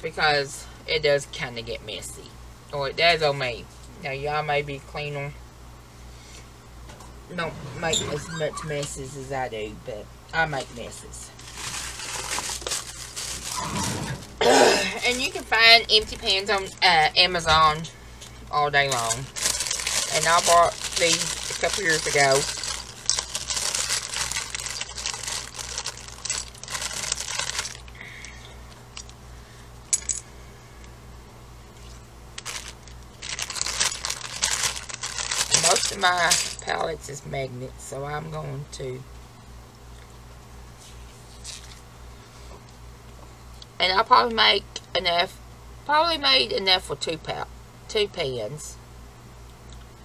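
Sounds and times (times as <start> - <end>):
crinkling and rustling: 10.6 - 14.4, 15.0 - 28.0, 31.7 - 36.9, 40.8 - 41.8
small metal clinks: 29.9 - 30.3.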